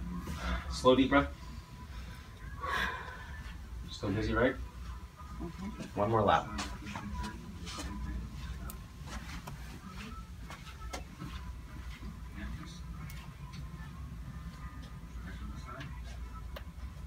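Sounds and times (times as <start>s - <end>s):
low room hum: 0.0s - 17.0s
footsteps on carpet: 5.8s - 12.2s.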